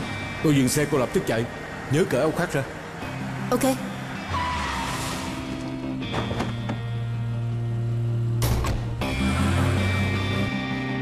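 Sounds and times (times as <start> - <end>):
background music: 0.0 - 11.0
car tyres squealing: 3.8 - 6.6.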